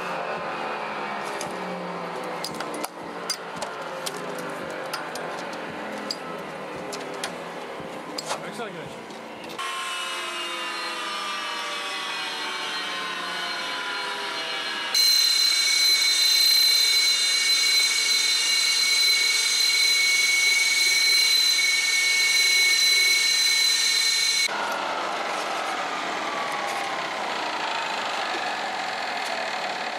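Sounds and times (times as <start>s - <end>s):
jet engines roaring with whine: 0.0s - 29.9s
jet engine whine falling in pitch: 9.6s - 29.9s.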